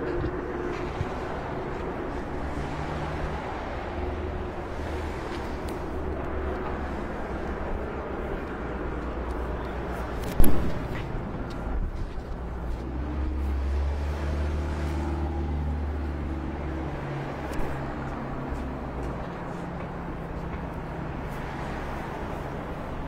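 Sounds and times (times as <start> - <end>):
vehicle engines idling: 0.0 - 23.0.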